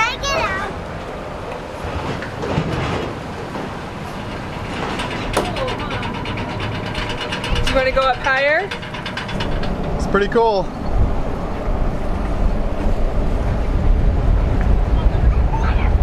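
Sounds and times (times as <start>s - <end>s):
ferry engines rumbling: 0.0s - 16.0s
voices: 5.2s - 11.0s, 14.6s - 16.0s.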